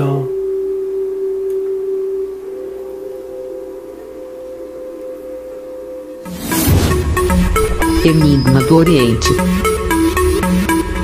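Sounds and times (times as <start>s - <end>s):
sustained drone tone: 0.0s - 11.0s.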